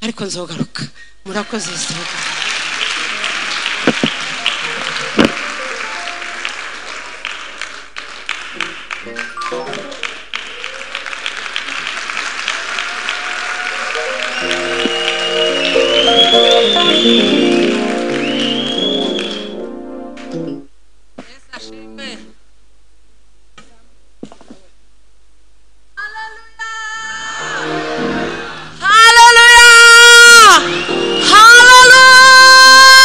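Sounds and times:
congregation applauding: 1.5 - 20.4, 29.2 - 33.0.

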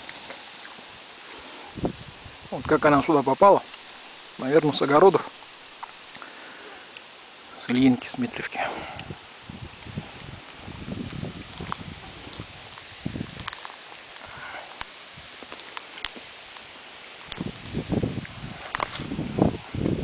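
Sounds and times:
branches rustling and snapping: 0.0 - 20.0.

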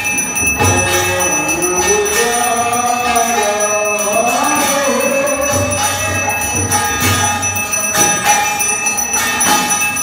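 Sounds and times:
bells ringing: 0.0 - 10.0.

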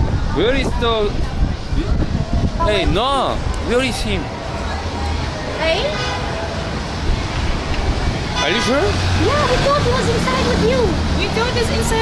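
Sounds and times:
low rumble of vehicle engines: 0.0 - 12.0.

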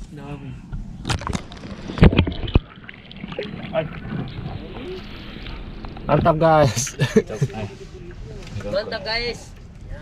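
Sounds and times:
water splash: 1.0 - 6.1.

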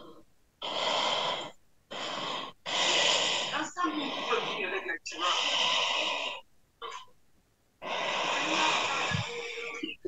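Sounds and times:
heavy breathing into microphone: 0.6 - 6.4, 7.8 - 10.0.

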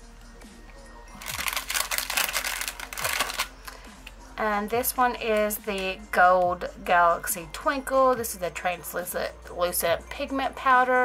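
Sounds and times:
background music: 0.0 - 11.0
plastic packaging crinkling: 1.2 - 3.8.

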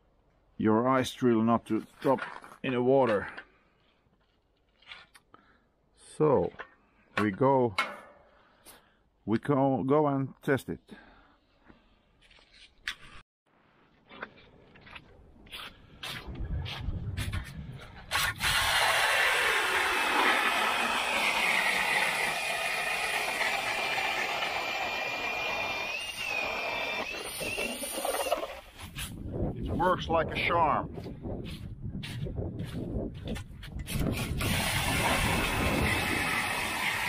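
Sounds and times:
auger blades grinding ice: 18.1 - 29.1, 33.9 - 37.0
drill motor whine: 18.5 - 28.6, 34.2 - 37.0.

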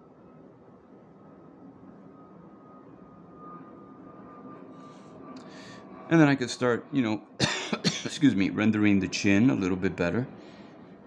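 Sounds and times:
thin high whine: 0.0 - 11.0.

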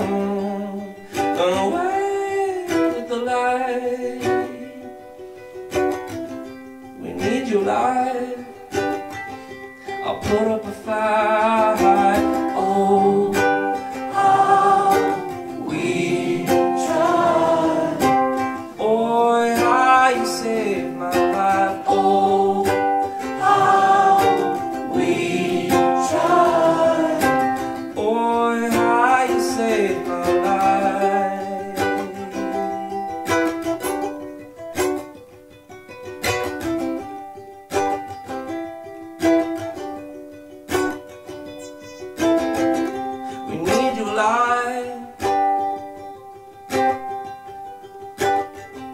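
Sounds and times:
man singing: 0.0 - 5.1, 7.0 - 8.9, 9.9 - 32.9, 43.3 - 45.5
strummed ukulele: 0.0 - 48.9.

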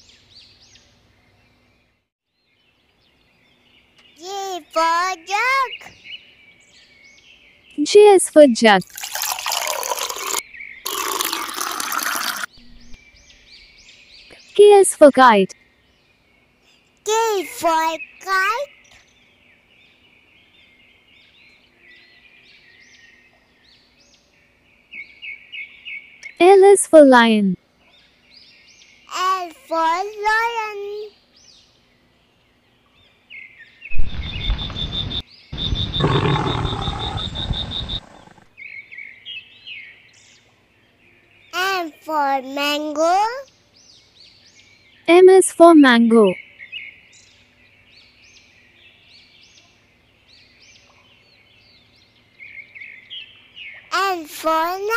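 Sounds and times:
juice pouring into a glass: 8.8 - 12.5
faint high chirps: 33.9 - 38.4
lion roaring: 34.2 - 38.5.

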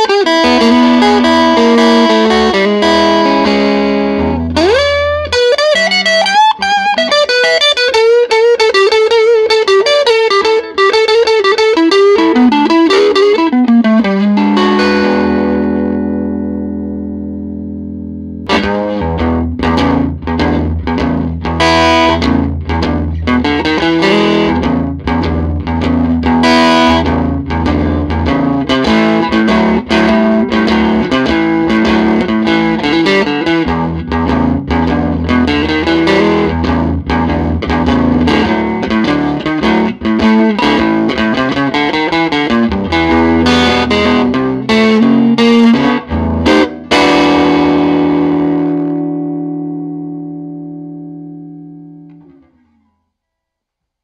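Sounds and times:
overdriven electric guitar blues licks: 0.0 - 53.0.

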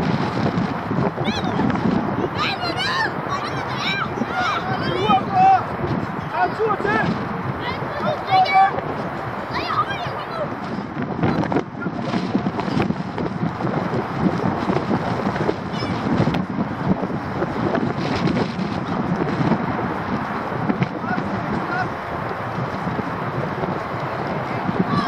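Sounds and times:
wind buffeting microphone: 0.0 - 25.0
children shouting: 2.3 - 5.6, 7.6 - 8.8, 9.4 - 10.6.

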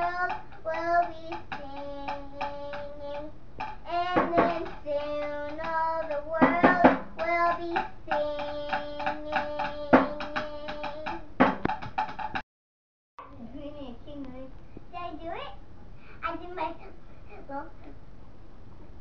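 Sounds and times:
child singing: 0.0 - 11.3
sharp rhythmic taps: 0.0 - 12.4.

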